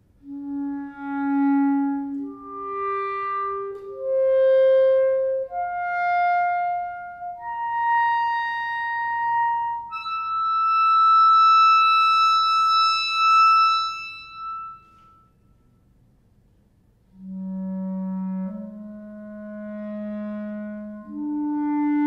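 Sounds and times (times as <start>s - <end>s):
clarinet holding long notes: 0.1s - 15.9s, 17.1s - 22.0s.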